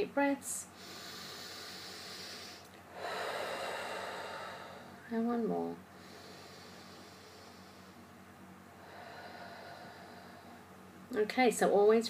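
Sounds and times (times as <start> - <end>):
person breathing deeply: 0.7 - 5.1, 5.9 - 10.8.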